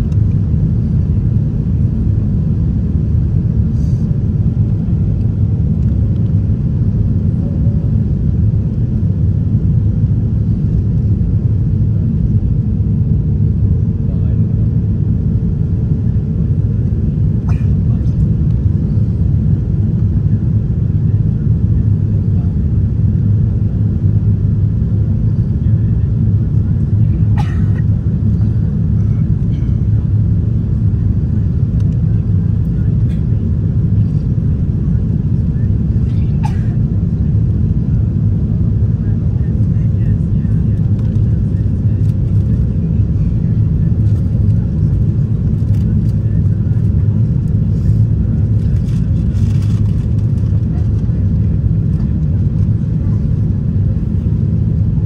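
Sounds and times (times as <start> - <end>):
airplane cabin engine rumble: 0.0 - 55.0.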